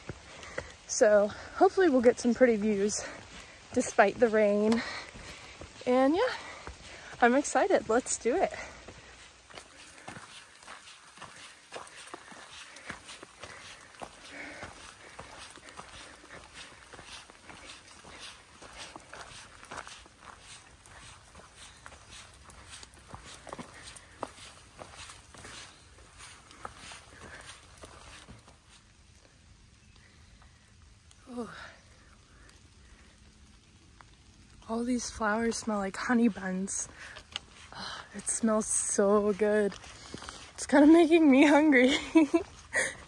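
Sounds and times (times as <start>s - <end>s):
footsteps on dirt trail: 0.0s - 30.6s, 34.0s - 43.0s.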